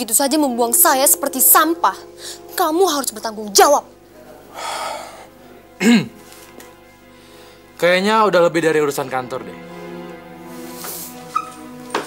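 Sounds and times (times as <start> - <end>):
soft background music: 0.0 - 12.0
breathy sigh: 4.5 - 5.3.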